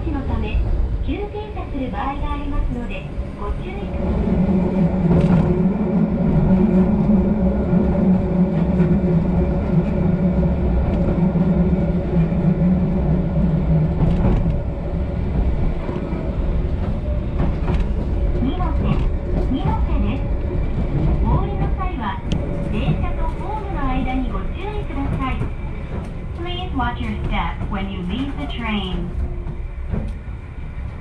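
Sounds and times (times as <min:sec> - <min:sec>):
train rumble from inside: 0:00.0 - 0:31.0.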